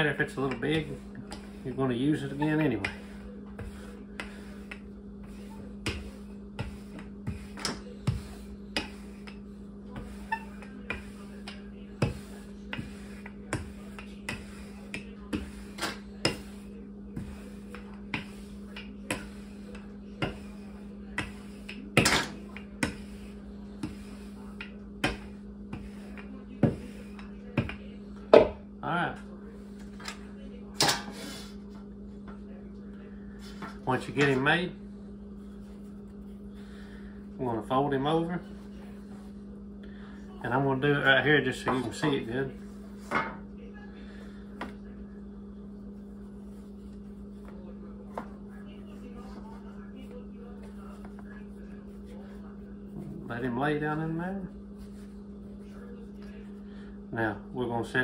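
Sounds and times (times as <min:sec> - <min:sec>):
rolling pin knocking on countertop: 0:23.8 - 0:28.6.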